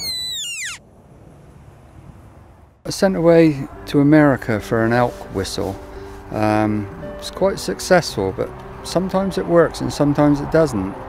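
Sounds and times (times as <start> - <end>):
deer whistle call: 0.0 - 0.8.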